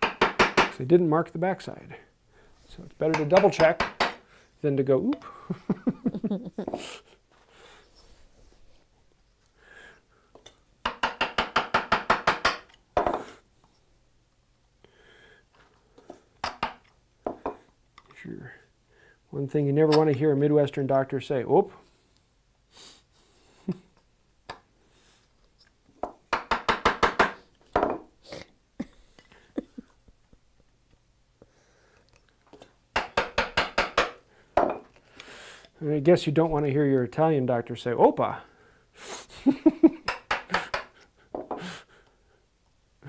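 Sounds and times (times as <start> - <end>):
mallet tapping chisel into wood: 0.0 - 0.8, 3.1 - 4.2, 10.8 - 13.2, 26.3 - 28.0, 33.0 - 34.8.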